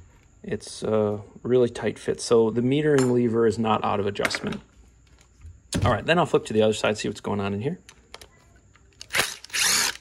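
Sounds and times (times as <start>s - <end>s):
cordless driver spinning: 9.0s - 10.0s.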